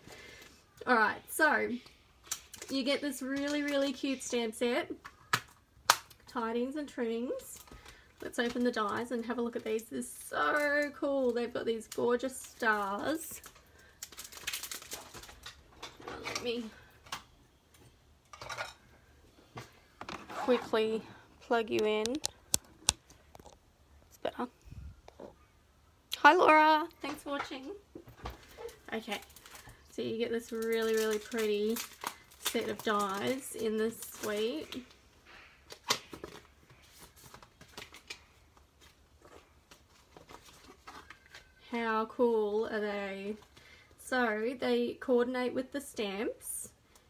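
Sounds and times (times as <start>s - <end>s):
plastic packaging crinkling: 7.4s - 16.8s, 28.4s - 35.0s, 35.7s - 41.6s.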